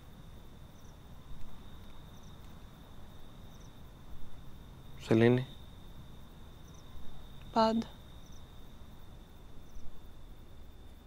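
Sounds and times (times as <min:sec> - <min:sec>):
cricket trill: 0:00.0 - 0:11.0.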